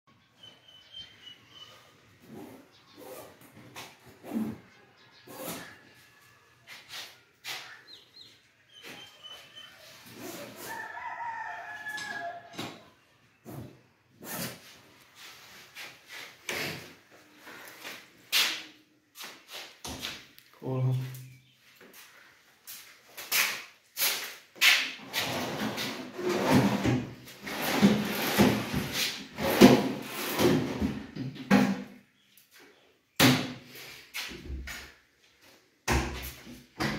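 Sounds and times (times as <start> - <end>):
faint bird chirps: 7.5 - 10.0
rooster crowing: 10.5 - 12.6
drawers sliding open and shut: 25.0 - 31.7.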